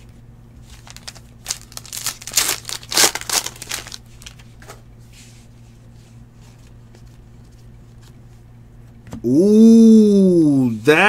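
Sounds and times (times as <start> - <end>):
foil wrapper crinkling: 0.7 - 4.4.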